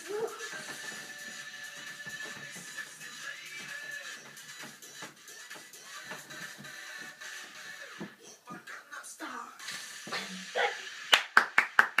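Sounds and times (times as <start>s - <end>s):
hands clapping: 11.1s - 12.0s.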